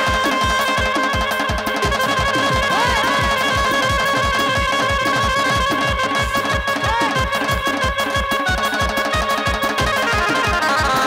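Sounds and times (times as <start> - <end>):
reedy lead melody: 0.0 - 11.0
steady drum beat: 0.0 - 11.0.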